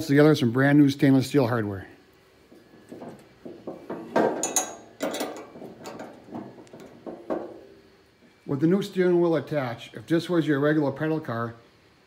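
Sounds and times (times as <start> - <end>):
metal knocks and clicks: 2.5 - 7.7.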